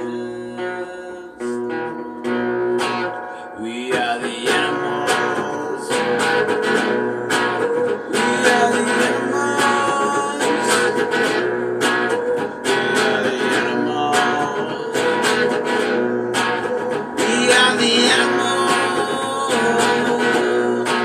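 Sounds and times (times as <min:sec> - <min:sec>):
guitar strumming chords: 0:00.0 - 0:21.0.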